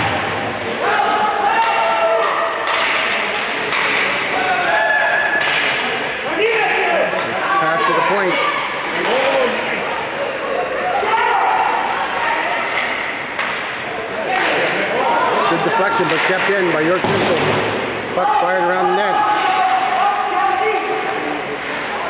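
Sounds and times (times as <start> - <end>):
people shouting: 0.1 - 2.9, 4.3 - 5.6, 6.3 - 12.4, 18.1 - 21.0
puck and sticks hitting boards: 1.5 - 4.5, 5.2 - 7.3, 8.9 - 9.6, 12.6 - 21.0.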